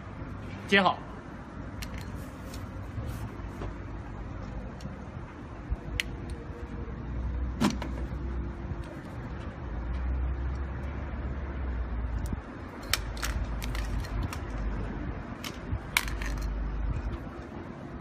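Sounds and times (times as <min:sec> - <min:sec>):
steady low rumble: 0:00.0 - 0:18.0
metal clips clicking and clacking: 0:12.2 - 0:14.6, 0:15.4 - 0:16.6.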